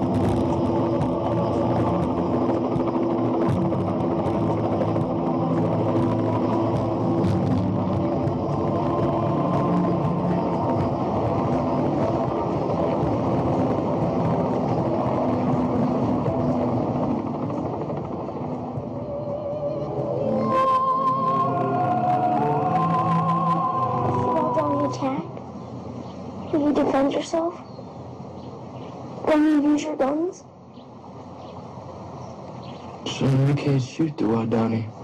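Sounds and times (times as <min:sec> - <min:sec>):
film music with held tones: 0:00.0 - 0:35.0
propeller plane engine drone: 0:00.0 - 0:35.0.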